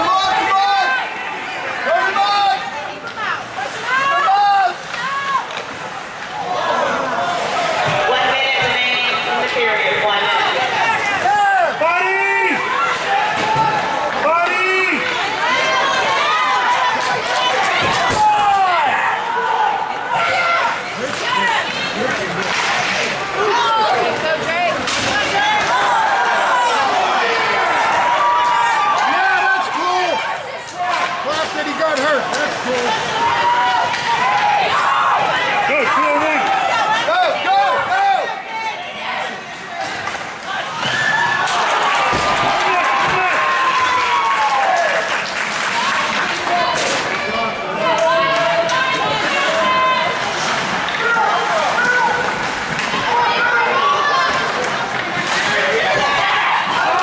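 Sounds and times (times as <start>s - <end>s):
spectators talking and calling out: 0.0s - 57.0s.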